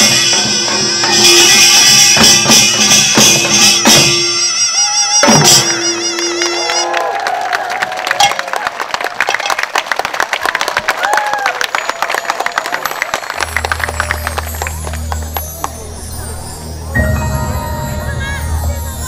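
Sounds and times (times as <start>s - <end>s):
drum ensemble: 0.0s - 6.4s
audience clapping and cheering: 5.6s - 16.4s.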